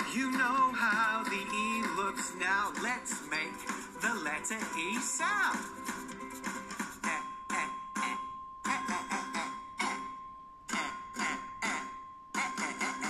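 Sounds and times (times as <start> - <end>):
man repeating letter sound: 0.0 - 5.8, 7.0 - 10.0
kids' letter song from laptop speakers: 0.0 - 13.0
faint steady high tone: 7.0 - 13.0.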